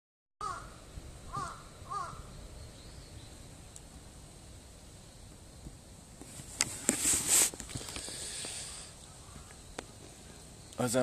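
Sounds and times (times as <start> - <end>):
crow cawing: 0.4 - 2.3, 9.0 - 9.6.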